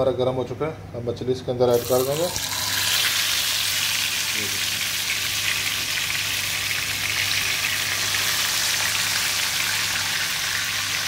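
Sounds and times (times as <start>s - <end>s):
fish sizzling in hot oil: 1.8s - 11.0s.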